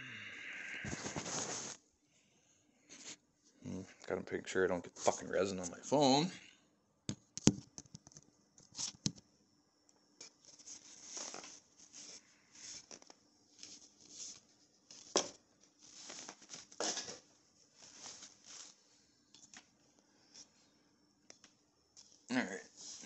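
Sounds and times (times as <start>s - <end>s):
rustling and scraping: 0.8s - 1.8s, 10.2s - 20.6s, 22.0s - 23.0s.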